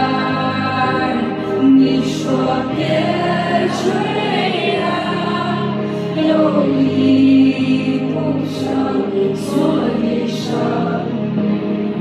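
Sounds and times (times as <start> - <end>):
keyboard chords: 0.0 - 12.0
person singing: 0.0 - 12.0.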